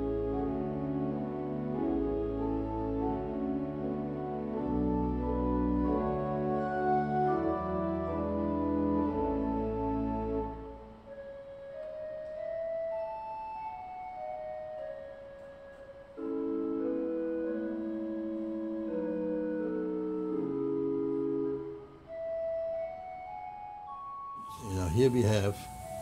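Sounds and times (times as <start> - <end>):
pipe organ playing: 0.0 - 26.0.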